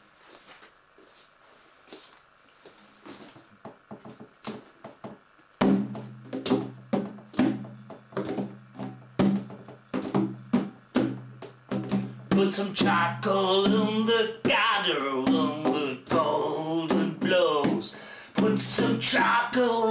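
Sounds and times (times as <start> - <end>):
frame drum beats: 3.7 - 19.6.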